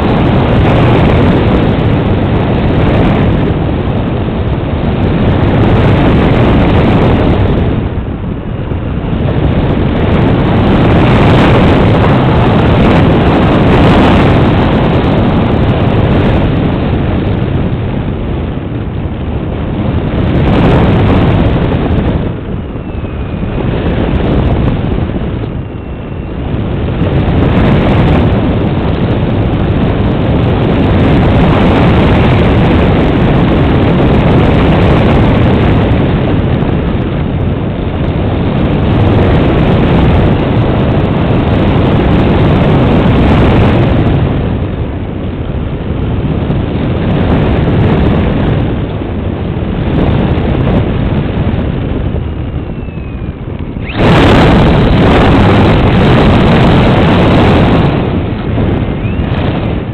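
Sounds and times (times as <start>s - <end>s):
airflow and propeller noise: 0.0s - 59.9s.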